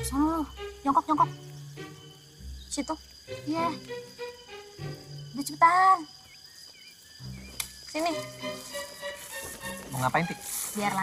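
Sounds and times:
insects chirring: 0:00.0 - 0:11.0
low sustained film music: 0:00.0 - 0:11.0.

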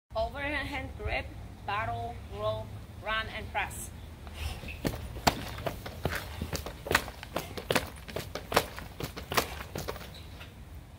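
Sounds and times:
feet stepping quickly: 0:04.6 - 0:10.2
battle ropes slapping on grass: 0:04.8 - 0:10.2.

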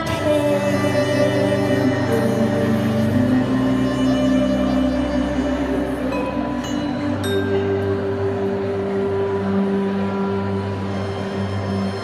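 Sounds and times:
band playing held low notes: 0:00.0 - 0:12.0.

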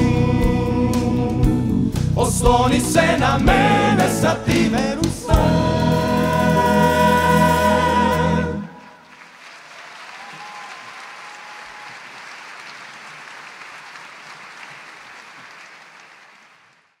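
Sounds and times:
audience applauding: 0:08.8 - 0:17.0.

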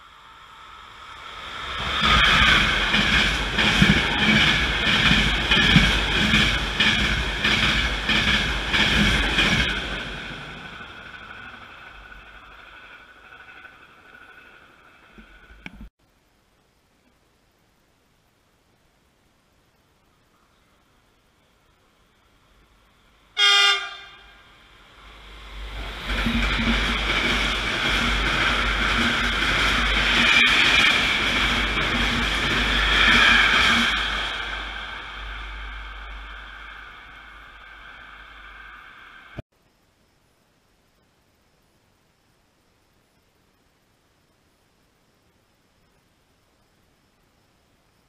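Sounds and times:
train wheels rumbling: 0:00.0 - 0:15.9, 0:21.5 - 0:39.4
wheels clacking over rail joints: 0:01.8 - 0:15.9, 0:25.7 - 0:35.4
locomotive horn blast: 0:23.4 - 0:24.4.

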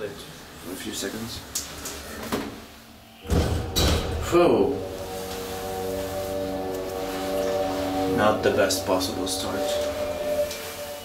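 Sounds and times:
elevator thump with low rumble: 0:03.3 - 0:04.6.

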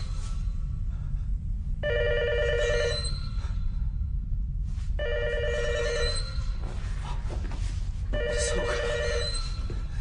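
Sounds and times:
telephone ringing: 0:01.8 - 0:03.1, 0:05.0 - 0:06.3, 0:08.2 - 0:09.4.

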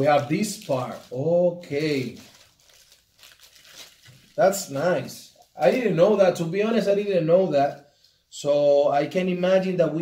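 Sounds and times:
plastic bag crinkling: 0:00.0 - 0:05.9.

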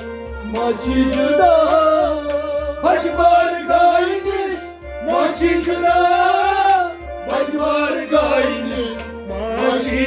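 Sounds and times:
man singing melodic phrases: 0:08.5 - 0:10.0.

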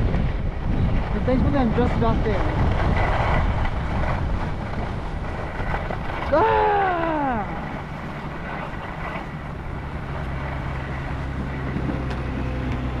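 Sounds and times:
wind on microphone: 0:00.0 - 0:13.0
skis sliding over packed snow: 0:00.2 - 0:13.0.

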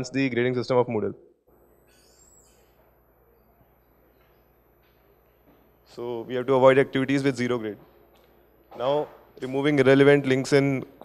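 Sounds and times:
man speaking: 0:05.9 - 0:07.8, 0:08.7 - 0:11.0.

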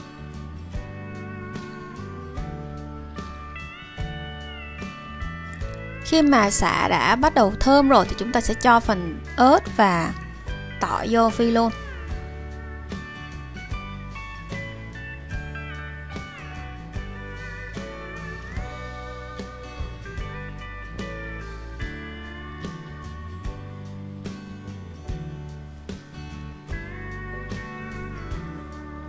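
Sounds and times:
plucked melody with sliding notes: 0:00.0 - 0:29.0
steady bass line: 0:00.0 - 0:29.0.

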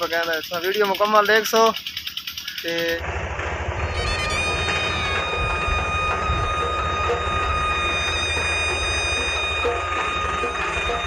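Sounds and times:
steady high-pitched tone: 0:00.0 - 0:11.0
low vehicle rumble: 0:03.0 - 0:11.0
wind buffeting microphone: 0:03.6 - 0:08.1.

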